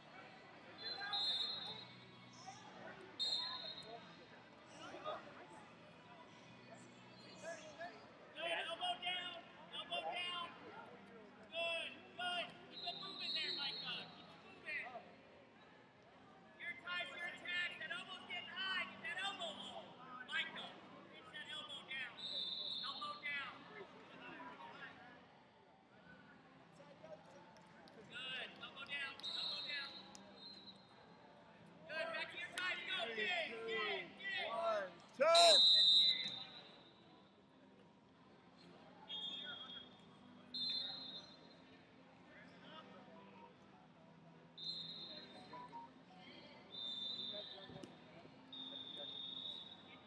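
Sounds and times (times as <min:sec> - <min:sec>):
short high whistle tones: 0:00.8 - 0:02.0, 0:03.2 - 0:03.9, 0:35.2 - 0:37.0, 0:39.1 - 0:40.0, 0:40.6 - 0:41.6, 0:44.6 - 0:45.9, 0:46.7 - 0:47.7, 0:48.5 - 0:50.0
coaches and spectators shouting: 0:31.9 - 0:36.6.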